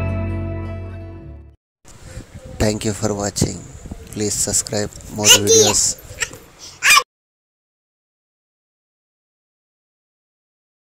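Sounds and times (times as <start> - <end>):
person saying thank you: 5.2 - 6.0.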